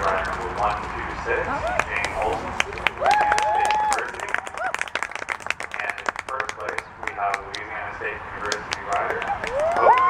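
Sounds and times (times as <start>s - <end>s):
voices in crowd: 0.0s - 4.8s
audience clapping: 0.0s - 7.8s, 8.4s - 10.0s.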